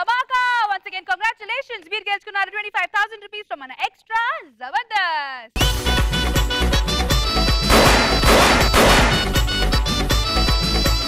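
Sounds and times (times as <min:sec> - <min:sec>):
music with steady beat: 0:05.6 - 0:11.0
confetti cannons bursting: 0:07.7 - 0:09.6.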